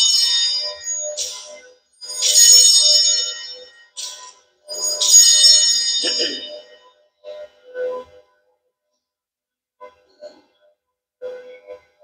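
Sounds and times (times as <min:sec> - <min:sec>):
small altar bells ringing: 0:00.0 - 0:06.8.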